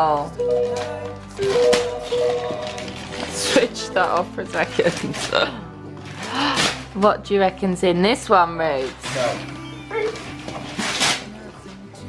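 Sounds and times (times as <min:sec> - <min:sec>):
background music: 0:00.0 - 0:12.0
wrapping paper tearing: 0:08.8 - 0:11.5.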